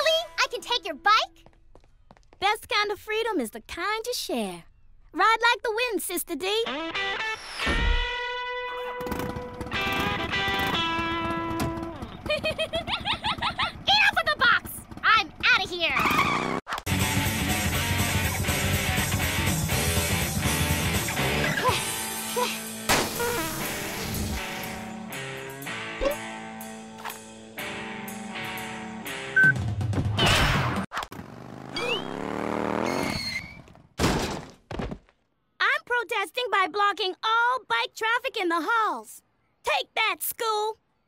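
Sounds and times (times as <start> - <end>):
cartoon girl laughing: 12.1 - 14.1
motorbike skid sound effect: 16.0 - 16.6, 30.5 - 33.8
loud cartoon crash: 22.9 - 24.3, 30.1 - 30.8
rising cartoon whine: 31.7 - 33.3.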